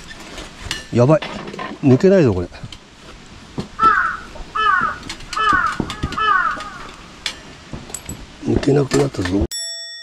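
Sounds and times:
crow cawing: 0:03.8 - 0:07.2.

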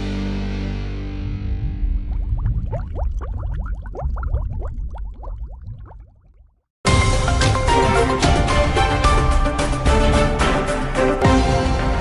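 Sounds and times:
low rumble: 0:01.0 - 0:06.5
bubbling rising chirps: 0:01.4 - 0:06.7.

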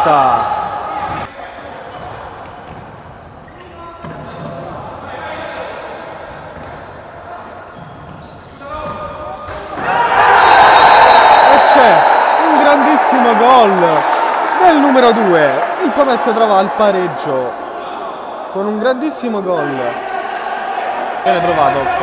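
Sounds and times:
players calling out: 0:09.7 - 0:20.4
loud shouting and cheering: 0:09.7 - 0:22.0.

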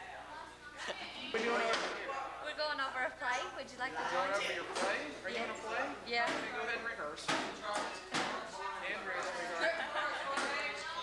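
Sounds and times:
indistinct voices chattering: 0:00.0 - 0:11.0.

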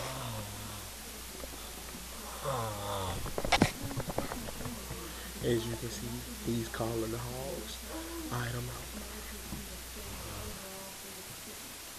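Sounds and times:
child snoring: 0:00.0 - 0:03.4, 0:10.0 - 0:10.8.

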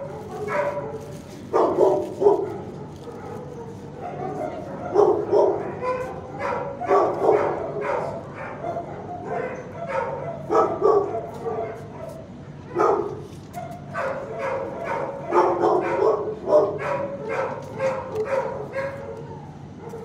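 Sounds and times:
dog barking loudly: 0:00.0 - 0:20.0
fainter barking of other dogs: 0:00.0 - 0:20.0.

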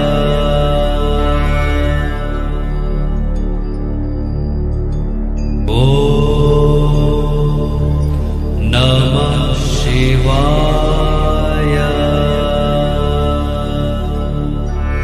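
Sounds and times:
person chanting a mantra: 0:00.0 - 0:03.5, 0:05.6 - 0:15.0
meditation music drone: 0:00.0 - 0:15.0.

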